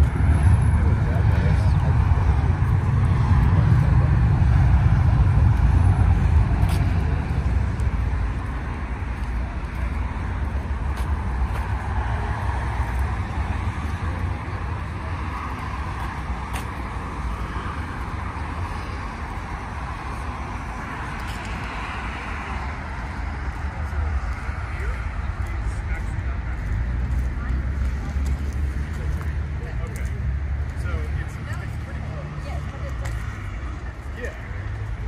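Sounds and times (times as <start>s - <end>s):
faint voices: 0.0s - 35.0s
road traffic rumble: 0.0s - 35.0s.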